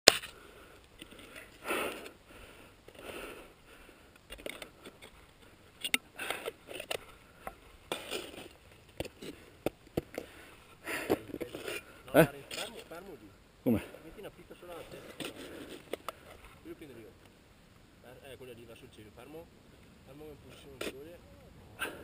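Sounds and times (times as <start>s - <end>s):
person breathing hard: 0.3s - 5.0s.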